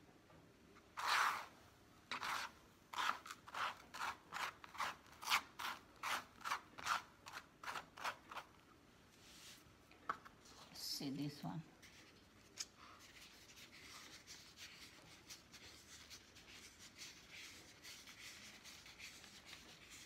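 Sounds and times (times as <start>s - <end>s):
hand scraping potting mix on tray: 0.9s - 8.6s.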